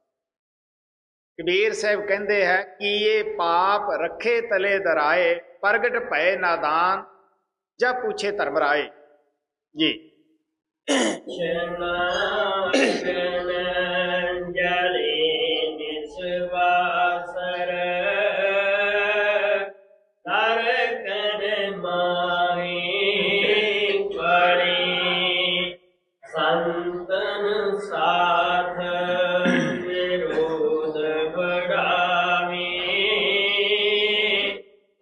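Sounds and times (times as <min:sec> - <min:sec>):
man chanting a hymn: 0:01.4 - 0:07.0, 0:11.4 - 0:19.7, 0:20.3 - 0:34.6.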